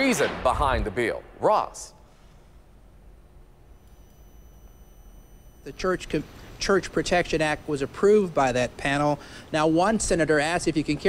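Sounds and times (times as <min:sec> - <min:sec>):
faint low hum: 0:00.0 - 0:11.0
high steady whine: 0:00.3 - 0:11.0.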